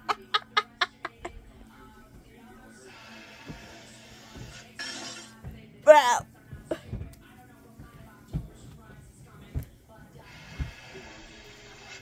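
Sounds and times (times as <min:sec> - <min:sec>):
faint cartoon music: 0:00.0 - 0:12.0.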